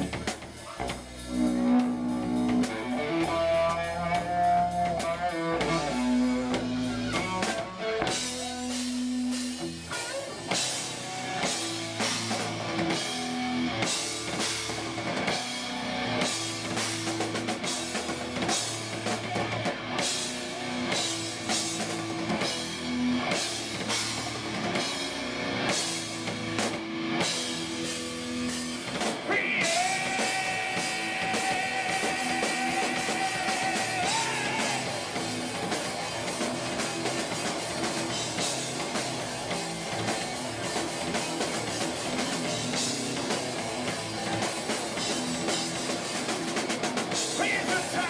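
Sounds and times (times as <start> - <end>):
live rock band playing: 0.0 - 48.0.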